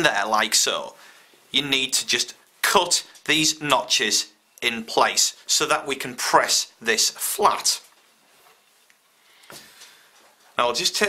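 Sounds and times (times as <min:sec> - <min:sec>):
cloth rustling: 0:07.8 - 0:10.6.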